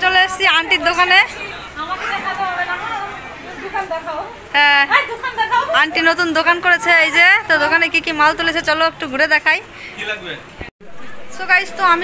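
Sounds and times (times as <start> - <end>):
people chatting: 0.0 - 12.0.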